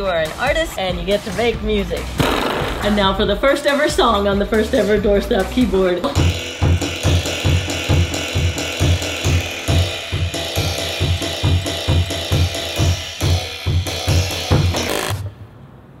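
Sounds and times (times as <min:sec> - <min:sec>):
steady thumping beat: 0:00.0 - 0:15.3.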